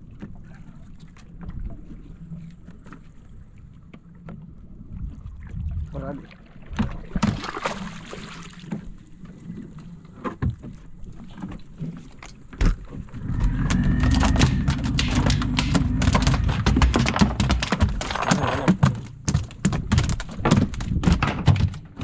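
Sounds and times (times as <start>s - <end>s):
knocks of fish thrashing: 6.7s - 7.9s, 12.6s - 22.0s
fish thudding against boat: 12.6s - 22.0s
low rumble: 13.0s - 16.9s.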